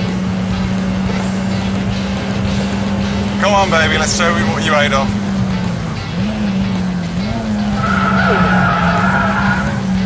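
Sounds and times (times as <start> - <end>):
car engine running hard: 0.0 - 10.0
tyre squeal: 7.7 - 9.8.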